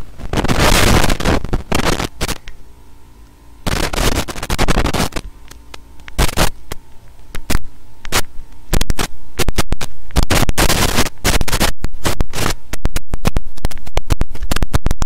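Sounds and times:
crackling static bursts: 0.0 - 15.0
steady mains hum: 0.0 - 15.0.

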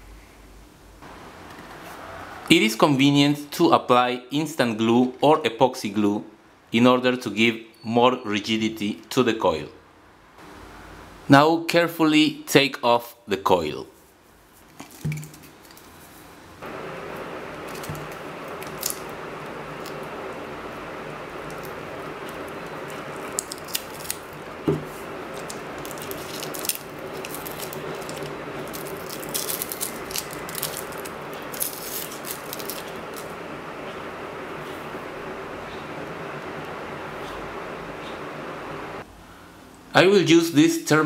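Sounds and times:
background hiss with low hum: 0.0 - 41.0
tape and wire crinkling: 14.6 - 34.0.

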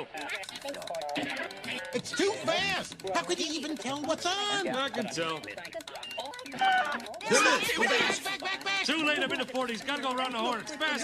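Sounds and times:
channel change clicks: 0.0 - 11.0
television voices and music: 0.0 - 11.0.

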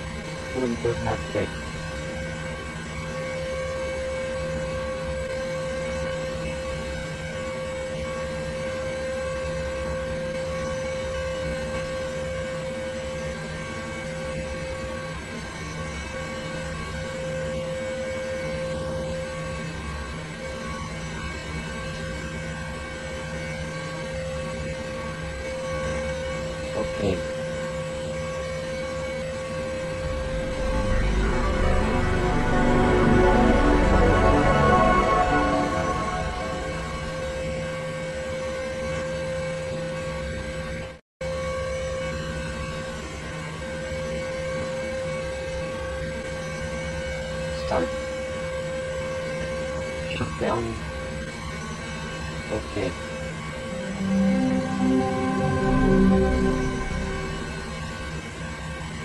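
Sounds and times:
drone of held tones: 0.0 - 15.0, 16.2 - 40.6, 43.6 - 58.7
gliding tone: 29.5 - 38.4, 53.5 - 58.2.

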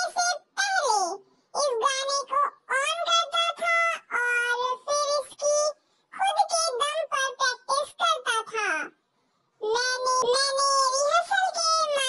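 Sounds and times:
high-pitched childlike voice talking: 0.0 - 9.0, 9.6 - 12.0.

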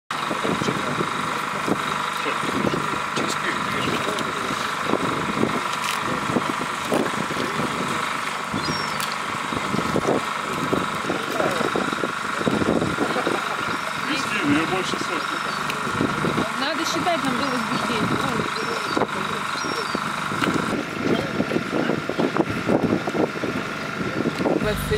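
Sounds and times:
steady hum: 24.5 - 24.9.

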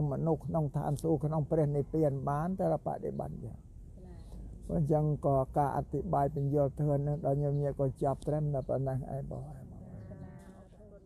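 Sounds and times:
man speaking: 0.0 - 3.6, 4.6 - 10.1.

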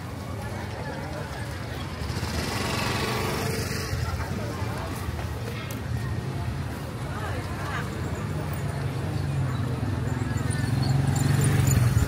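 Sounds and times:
market crowd chatter: 0.0 - 12.0
motor scooter engine running: 0.7 - 4.9.

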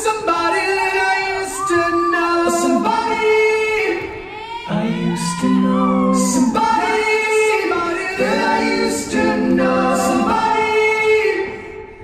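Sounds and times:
a cappella choir singing: 0.3 - 4.1, 4.7 - 12.0.

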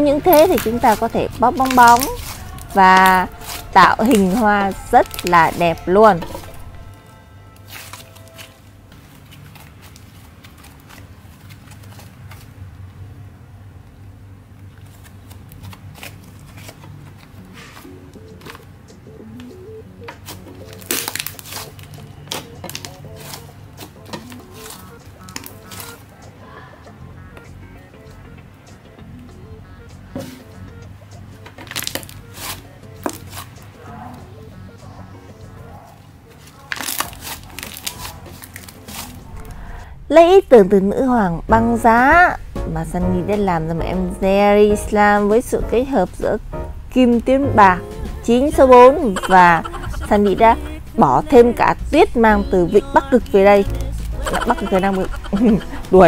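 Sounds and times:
soft background music: 0.0 - 12.0, 15.0 - 56.0
slime squishing and crackling: 0.2 - 6.9, 20.2 - 26.0, 31.6 - 33.5, 36.3 - 39.6.

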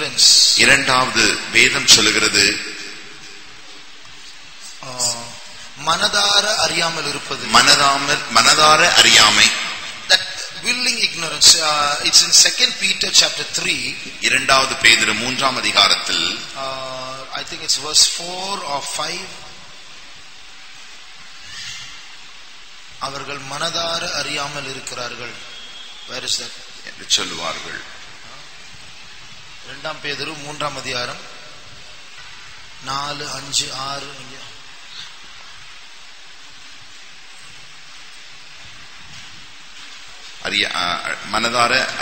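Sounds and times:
background hiss: 0.0 - 42.0.

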